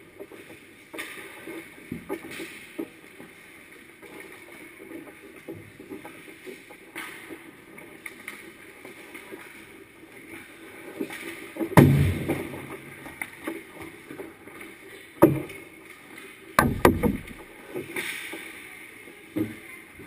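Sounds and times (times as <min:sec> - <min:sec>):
puck thudding against goal: 0:16.6 - 0:17.5
sharp knocks of sticks and pucks: 0:16.6 - 0:17.5.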